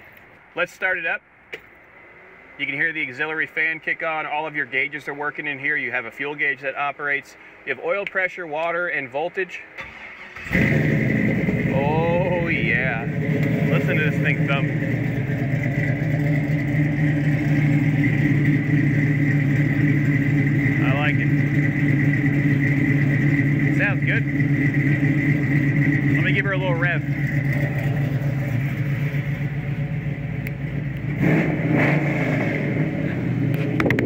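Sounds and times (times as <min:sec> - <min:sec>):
car engine idling: 0:09.8 - 0:34.0.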